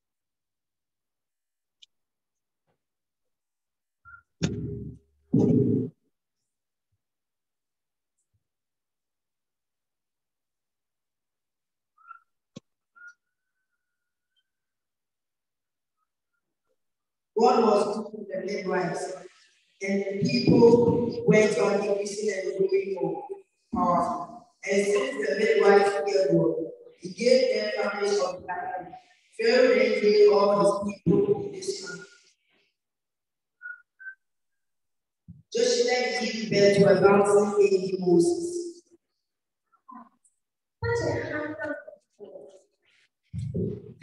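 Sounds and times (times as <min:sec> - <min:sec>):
faint high whistle tones: 0:04.1 - 0:04.4, 0:12.0 - 0:14.5, 0:31.6 - 0:32.2, 0:33.6 - 0:34.4.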